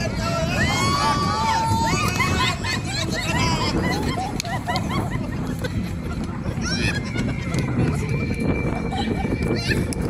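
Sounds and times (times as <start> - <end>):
children's voices and shrieks: 0.0 - 5.5, 6.4 - 10.0
wind buffeting microphone: 0.0 - 10.0.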